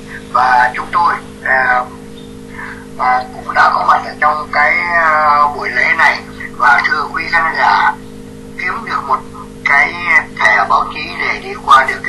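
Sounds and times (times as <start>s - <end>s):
person speaking: 0.0s - 8.0s, 8.6s - 12.0s
steady low hum: 0.0s - 12.0s.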